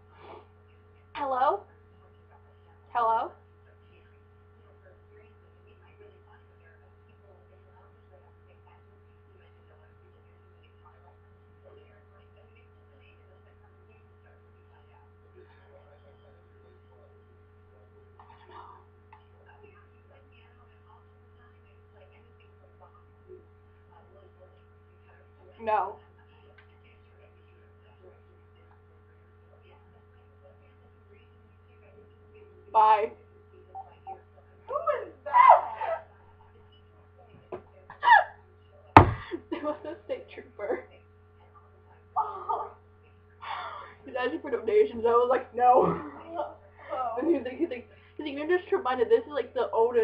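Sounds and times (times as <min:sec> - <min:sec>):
low electrical hum: 0:00.0 - 0:50.0.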